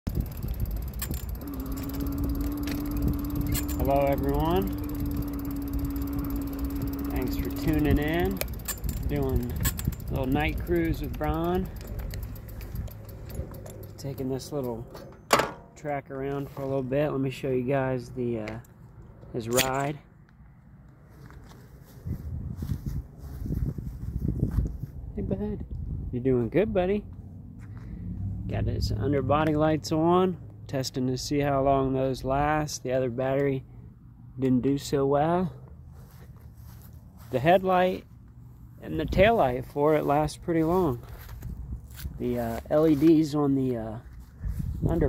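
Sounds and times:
wind and road rumble: 0:00.0 - 0:45.0
wind buffeting microphone: 0:00.1 - 0:14.9, 0:21.8 - 0:26.3, 0:41.2 - 0:42.2, 0:44.2 - 0:45.0
electric motor hum: 0:00.1 - 0:15.8
sharp clicks and rattles: 0:00.1 - 0:16.4.

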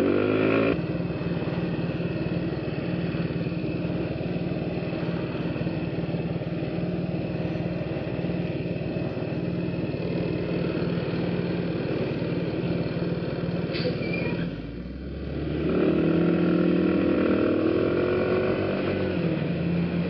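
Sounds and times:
scooter engine running steadily: 0:00.0 - 0:13.8, 0:19.1 - 0:20.0
road noise: 0:00.0 - 0:20.0.

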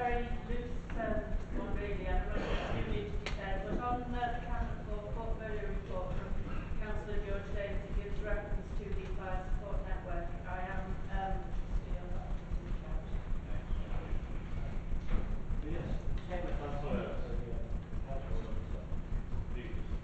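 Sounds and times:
low crackling rumble: 0:00.0 - 0:20.0.

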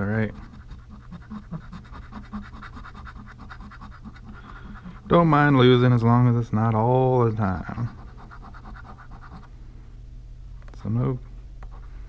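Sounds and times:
scratching lottery ticket: 0:00.0 - 0:05.6, 0:07.4 - 0:09.5.

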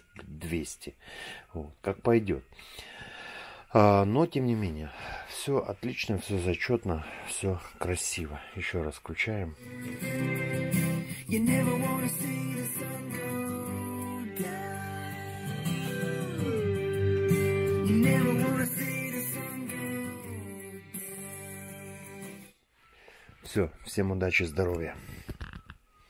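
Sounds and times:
guitar with sliding notes over loudspeakers: 0:09.6 - 0:22.5.

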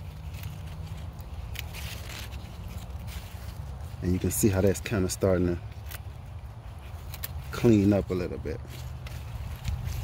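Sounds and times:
leaves and stems rustling: 0:00.0 - 0:10.0
leaves crackling as stripped: 0:00.0 - 0:10.0.

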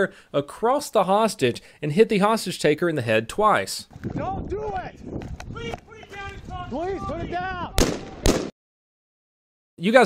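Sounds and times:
gunshots: 0:07.8 - 0:08.6.

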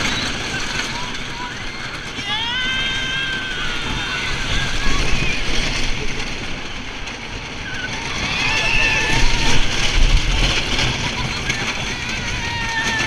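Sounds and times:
riders screaming: 0:00.0 - 0:13.0
rush of wind: 0:00.0 - 0:13.0
train rumbling on wooden track: 0:00.0 - 0:13.0.

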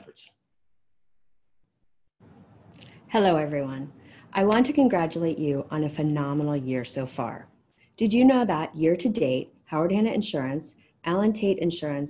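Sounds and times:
faint room hiss: 0:02.2 - 0:12.0.

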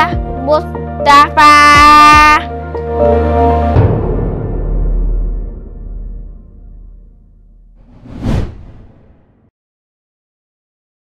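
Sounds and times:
low background music: 0:00.0 - 0:07.8
whoosh sound effect: 0:07.8 - 0:09.5.

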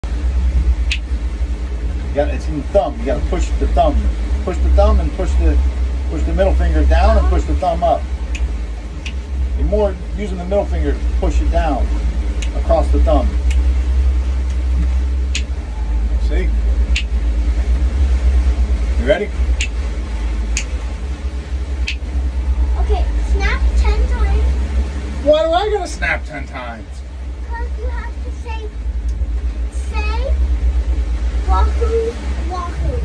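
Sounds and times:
steady low rumble: 0:00.0 - 0:33.0
child's finger snap: 0:00.9 - 0:01.1, 0:16.9 - 0:17.1
finger snap: 0:00.9 - 0:01.1, 0:08.3 - 0:09.2, 0:16.9 - 0:17.1.

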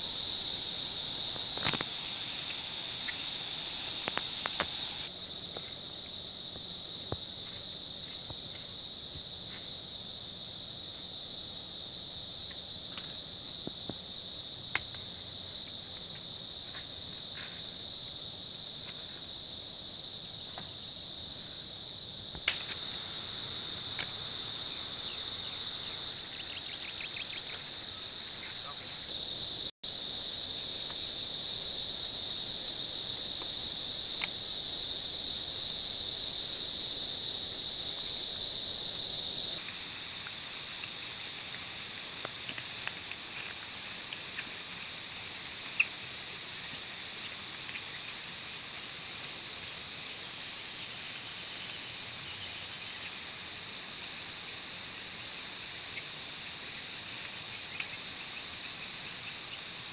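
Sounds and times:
insects chirring: 0:00.0 - 0:59.9
sharp clicks: 0:04.0 - 0:04.8.

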